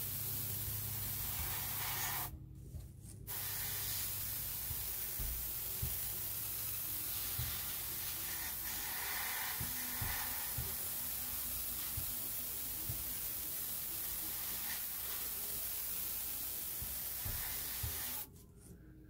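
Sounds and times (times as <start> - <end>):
airbrush spraying hiss: 0.0 - 2.3, 3.3 - 18.3.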